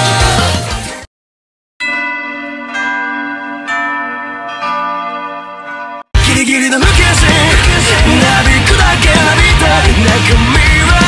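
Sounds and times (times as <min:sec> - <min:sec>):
bell ringing: 0:01.8 - 0:06.1.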